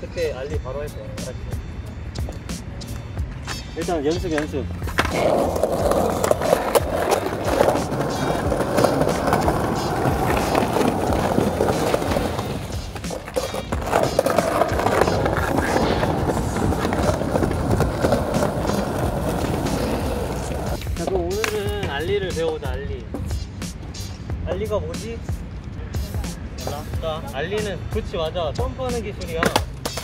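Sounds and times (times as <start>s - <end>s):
skateboard wheels rolling on tiles: 4.3s - 22.2s.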